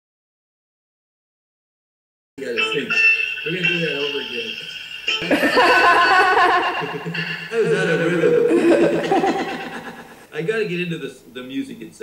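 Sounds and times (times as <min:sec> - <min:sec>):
man laughing: 0:05.2 - 0:10.2.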